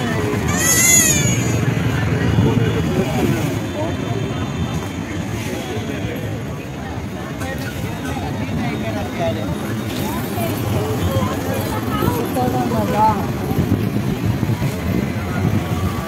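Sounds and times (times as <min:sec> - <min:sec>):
motorbike engines: 0:00.0 - 0:16.0
people talking: 0:00.0 - 0:16.0
traffic rumble: 0:00.0 - 0:16.0.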